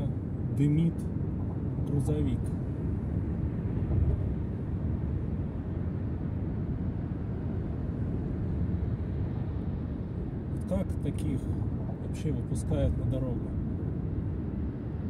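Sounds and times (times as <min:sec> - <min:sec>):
car driving on highway: 0:00.0 - 0:15.0.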